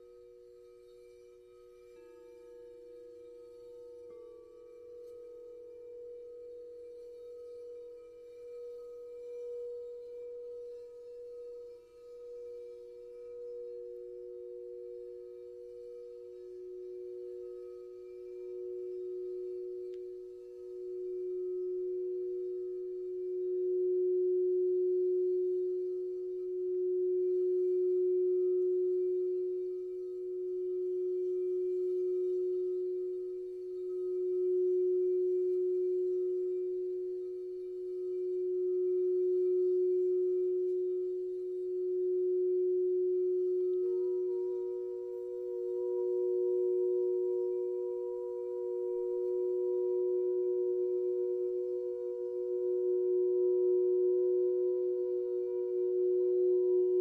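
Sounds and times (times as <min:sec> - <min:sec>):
higher-pitched singing bowl ringing: 0:00.0 - 0:57.0
low singing bowl ringing: 0:00.0 - 0:57.0.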